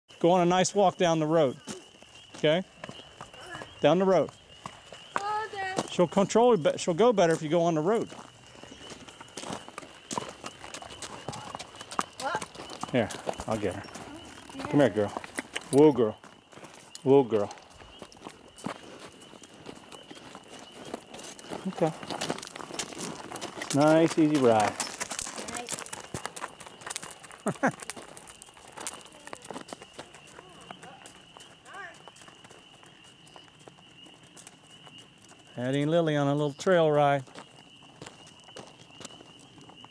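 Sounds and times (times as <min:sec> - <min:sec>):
horse hooves clopping on pavement: 0:00.1 - 0:39.9.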